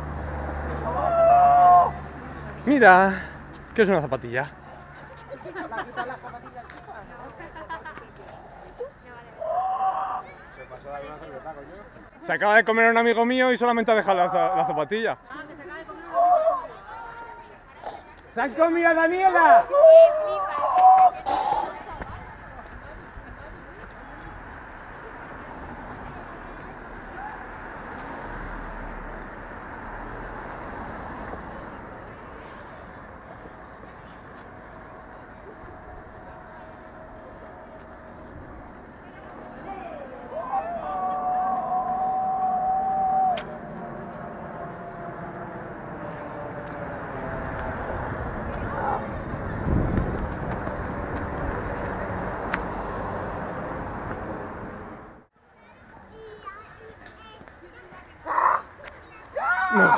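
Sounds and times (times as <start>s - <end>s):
cars passing: 0.0s - 9.6s, 10.2s - 55.3s
chatter of people: 4.4s - 12.4s, 14.2s - 27.6s, 31.6s - 41.2s, 55.4s - 59.9s.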